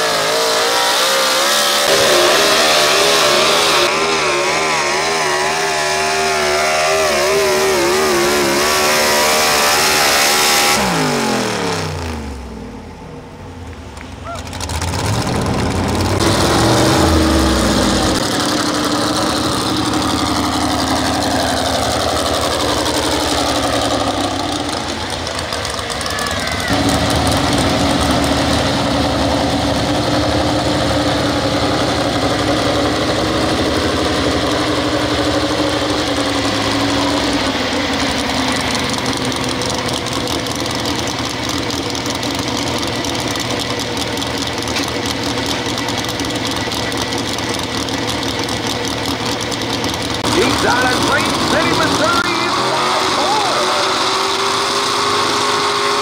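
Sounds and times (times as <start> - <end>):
pulling truck engine running: 0.0 - 56.0.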